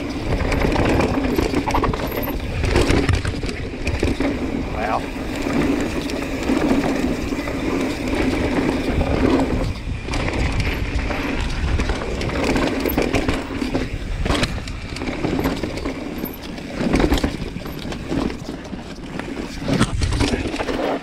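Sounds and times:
bike rattling clicks and knocks: 0.0s - 21.0s
bike tyres rumbling on trail: 0.0s - 21.0s.

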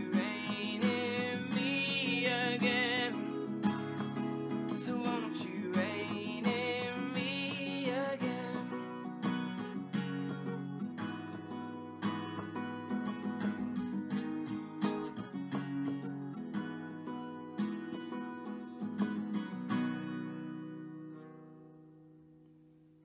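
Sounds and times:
acoustic guitar strumming chords: 0.0s - 22.7s.

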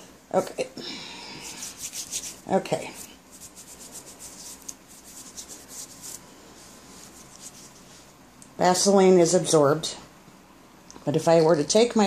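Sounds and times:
hands rubbing together: 1.3s - 8.1s.

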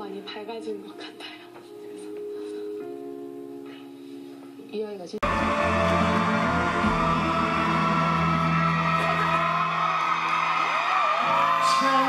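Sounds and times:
live band playing held chords: 5.2s - 11.4s
crowd shouting: 5.2s - 12.0s.

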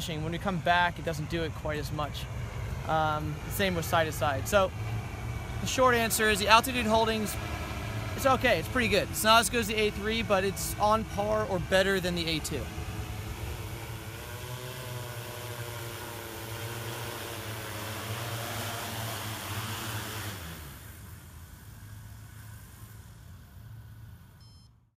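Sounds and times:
drone propellers droning: 0.0s - 24.6s.

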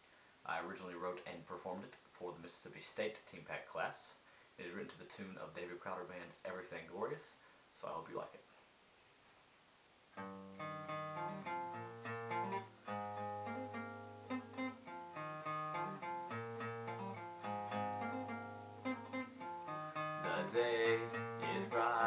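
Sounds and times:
acoustic guitar strumming: 10.2s - 22.0s.

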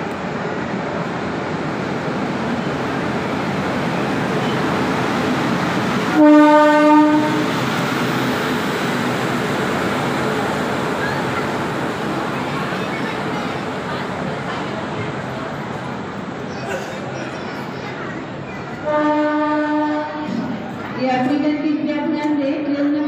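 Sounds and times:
train rumbling past: 0.0s - 23.0s
train horn blast: 6.1s - 7.6s, 18.8s - 20.5s.

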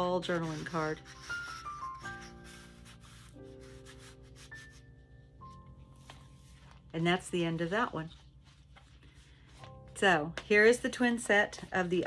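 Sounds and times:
soft background music: 0.0s - 12.0s
paper rubbing and rustling: 0.2s - 4.8s, 6.0s - 9.7s.

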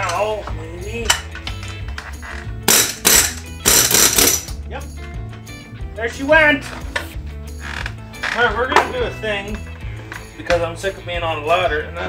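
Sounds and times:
background music: 0.0s - 12.0s
tool hammering metal: 2.7s - 4.6s.

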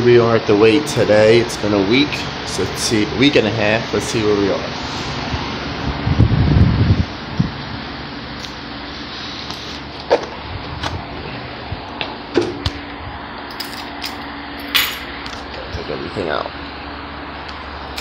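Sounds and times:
ventilation hum: 0.0s - 18.0s.

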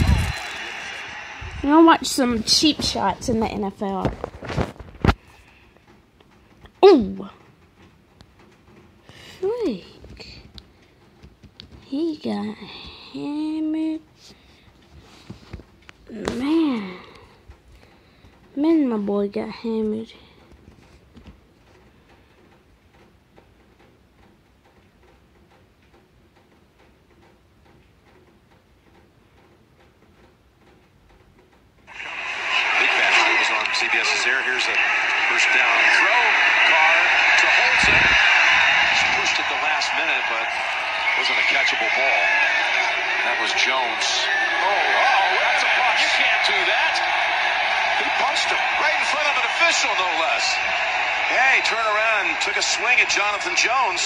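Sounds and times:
stadium crowd noise: 0.0s - 5.2s, 31.9s - 54.0s
man commentating: 31.9s - 54.0s.

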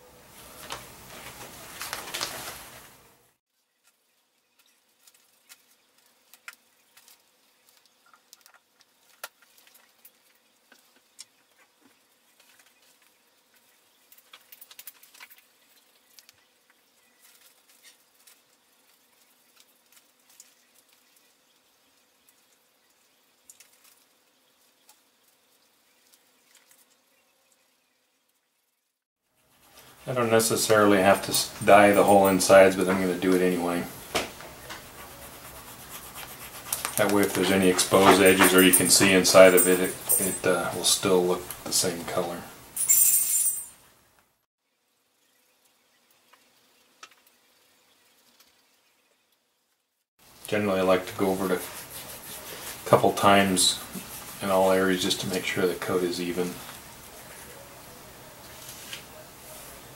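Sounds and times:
newspaper rustling: 0.3s - 3.1s, 29.7s - 41.2s, 58.4s - 59.8s
applicator dabbing on leather: 34.9s - 38.1s.

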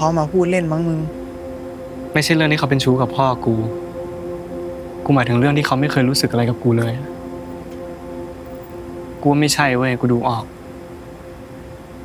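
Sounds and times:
soft sustained chord music: 0.0s - 12.0s.

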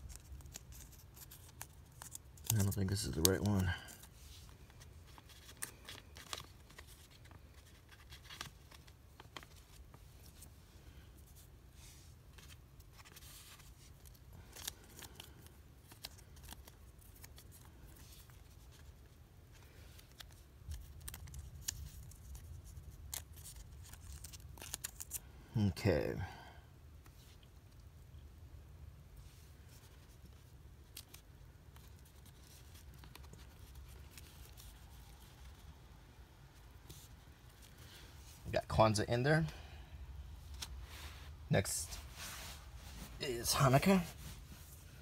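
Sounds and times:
paper clicks and rustles: 0.0s - 10.4s, 12.3s - 25.2s, 29.7s - 35.6s.

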